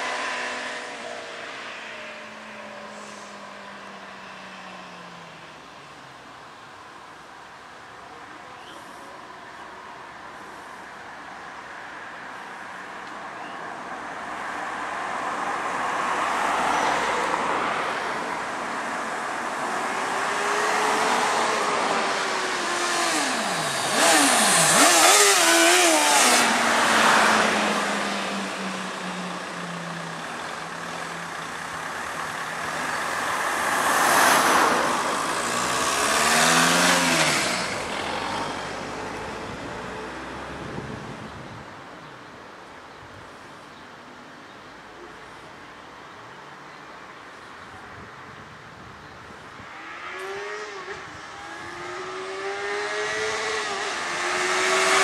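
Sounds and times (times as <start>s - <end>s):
motorcycle revving and accelerating: 0.0s - 2.2s, 19.7s - 30.5s, 32.2s - 41.3s, 49.6s - 55.0s
car traffic passing: 0.0s - 55.0s.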